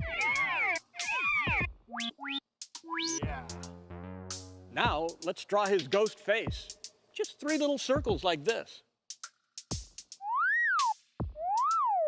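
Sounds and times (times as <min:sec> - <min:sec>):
gliding whistle-like electronic tones: 0:10.2 - 0:12.0.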